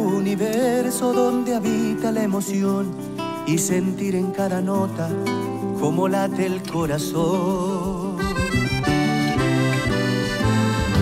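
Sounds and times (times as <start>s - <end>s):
accordion folk melody: 7.4s - 11.0s.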